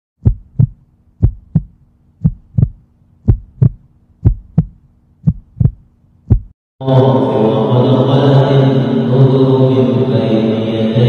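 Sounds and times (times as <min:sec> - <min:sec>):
faint steady hum: 0:00.2 - 0:06.5
heartbeat thumps: 0:00.2 - 0:06.6.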